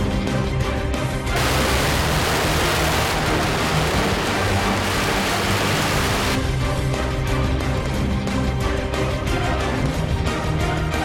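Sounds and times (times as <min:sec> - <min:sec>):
background music: 0:00.0 - 0:11.0
firecrackers crackling: 0:01.4 - 0:06.4.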